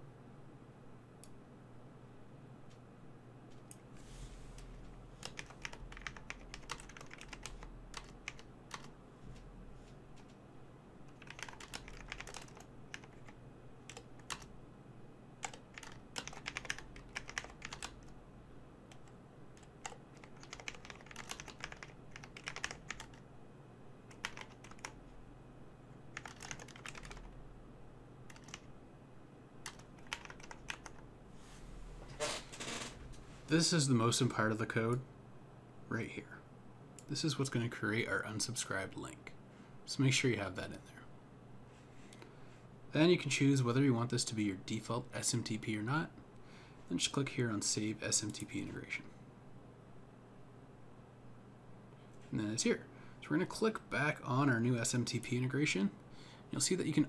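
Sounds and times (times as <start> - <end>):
computer keyboard typing: 5.2 - 8.9, 11.1 - 14.5, 15.4 - 18.1, 18.9 - 23.2, 24.1 - 25.0, 26.1 - 27.3, 28.3 - 28.7, 29.6 - 31.0.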